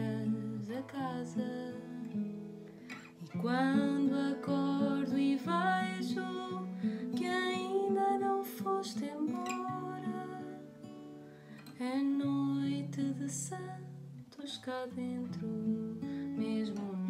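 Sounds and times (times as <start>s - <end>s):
woman singing: 0.0s - 2.4s, 3.2s - 11.0s, 11.6s - 17.0s
acoustic guitar: 0.0s - 17.0s.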